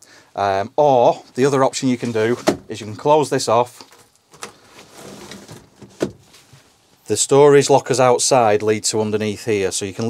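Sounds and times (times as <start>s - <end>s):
privacy screen sliding rustle: 3.7s - 7.0s.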